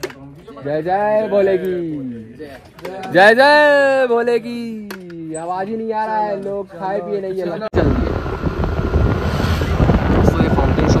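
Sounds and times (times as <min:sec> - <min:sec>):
scooter road noise: 0:07.8 - 0:11.0
wind buffeting microphone: 0:07.8 - 0:11.0.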